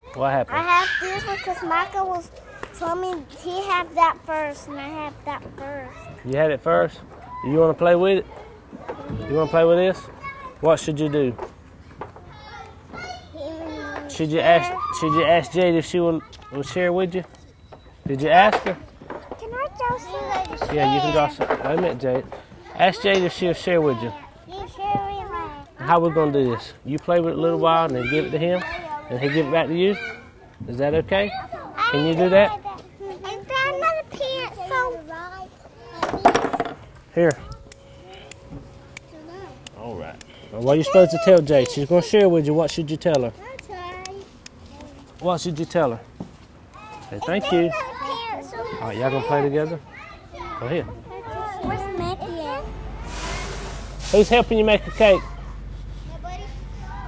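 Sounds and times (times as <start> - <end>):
children chattering: 0.0 - 6.3, 6.9 - 17.0, 18.8 - 57.0.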